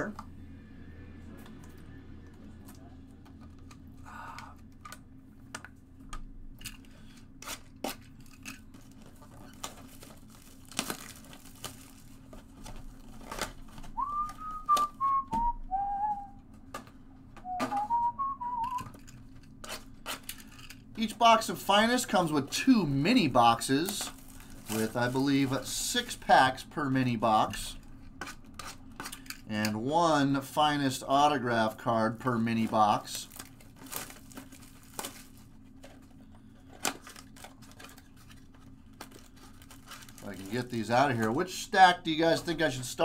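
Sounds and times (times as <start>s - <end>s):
plastic wrap crinkling: 7.6s - 15.0s, 23.4s - 25.5s, 32.6s - 41.2s
man whistling: 14.0s - 16.4s, 17.4s - 18.9s.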